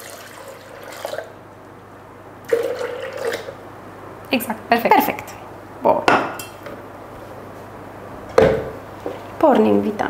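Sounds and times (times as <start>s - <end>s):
blender jar knocking onto base: 8.4s - 8.8s.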